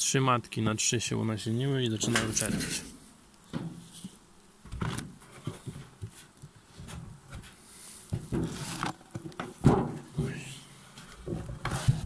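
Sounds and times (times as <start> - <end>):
honeybees buzzing: 0.1 - 11.8
wooden board knocks and scrapes: 3.5 - 6.2, 6.8 - 10.4, 11.0 - 12.0.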